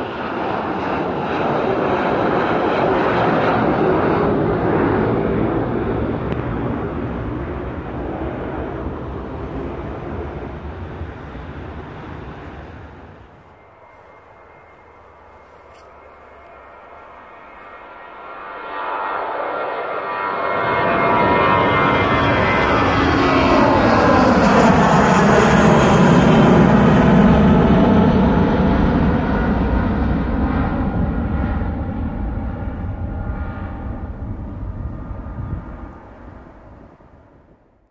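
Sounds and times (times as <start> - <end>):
jet airliner passing overhead: 0.0 - 37.9.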